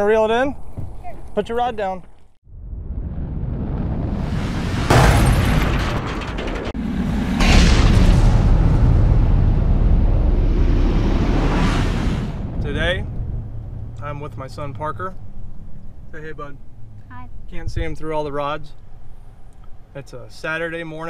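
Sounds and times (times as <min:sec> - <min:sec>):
deep boom: 0:02.4 - 0:15.6
long low rumble: 0:02.5 - 0:18.0.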